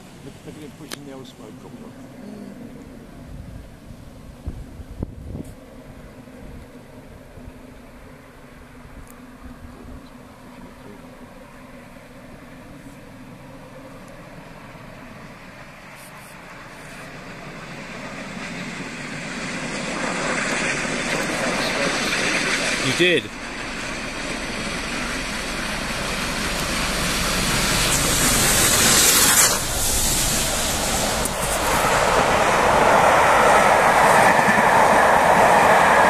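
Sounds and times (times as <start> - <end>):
steam train approaching: 11.4 - 36.0.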